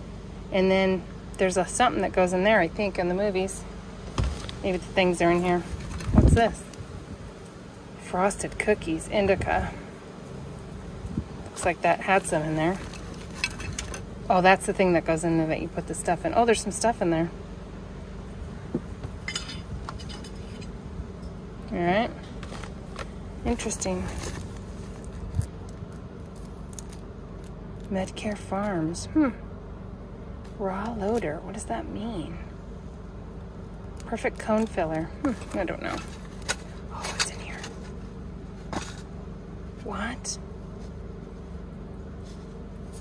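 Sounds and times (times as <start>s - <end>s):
steady low hum: 0.0s - 43.0s.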